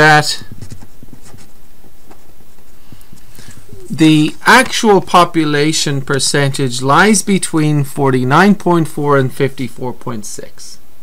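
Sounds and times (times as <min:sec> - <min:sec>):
marker scratching on paper: 0:00.6 - 0:01.6.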